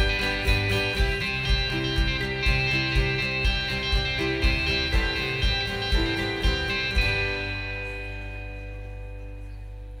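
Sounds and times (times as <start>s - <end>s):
acoustic guitar chord ringing: 0.0s - 10.0s.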